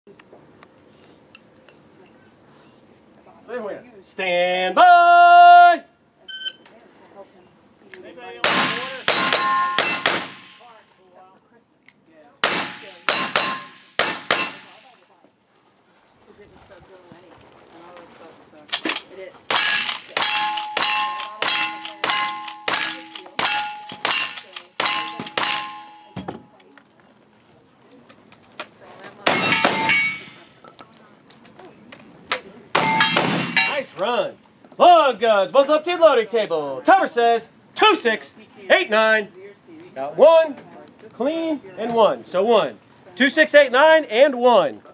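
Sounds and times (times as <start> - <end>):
handgun shots: 8.4 - 10.7, 12.4 - 14.9, 18.7 - 25.9
lever-action rifle shots: 8.4 - 10.7, 12.4 - 14.9, 18.7 - 26.0
shotgun blasts: 8.4 - 10.7, 12.4 - 15.0, 18.8 - 25.8
steel targets ringing: 8.4 - 10.8, 12.4 - 15.0, 19.5 - 26.3, 29.3 - 30.6, 32.8 - 34.0.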